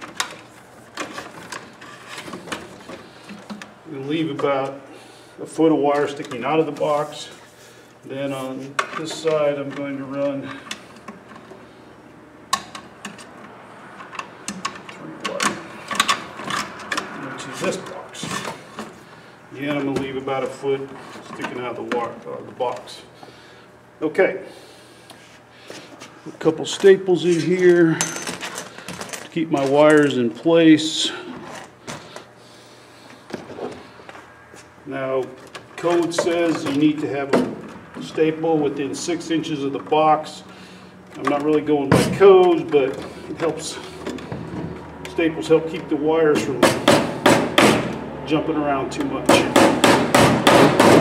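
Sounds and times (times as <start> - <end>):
clicks and knocks of tools handled: 1.0 - 3.7, 12.5 - 18.9.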